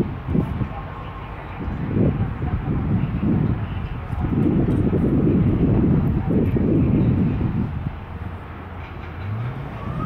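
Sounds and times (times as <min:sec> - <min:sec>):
car engine rumbling: 0:00.0 - 0:10.0.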